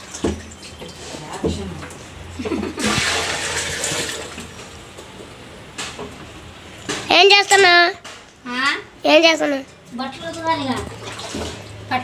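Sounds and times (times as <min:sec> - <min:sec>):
water pouring and splashing: 0:00.0 - 0:01.7, 0:02.8 - 0:04.6, 0:10.0 - 0:12.0.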